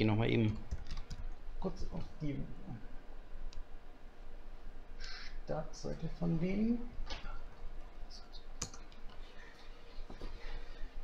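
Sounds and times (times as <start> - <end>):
laptop keyboard keys clicking: 0.4 - 1.4, 8.6 - 9.1.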